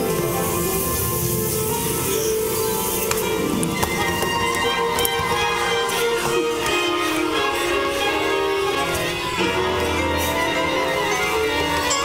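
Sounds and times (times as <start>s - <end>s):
orchestra playing sustained chords: 0.0s - 12.0s.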